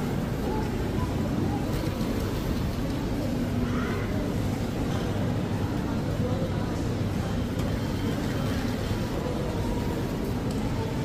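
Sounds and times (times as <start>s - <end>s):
faint shoppers' voices: 0.0s - 11.0s.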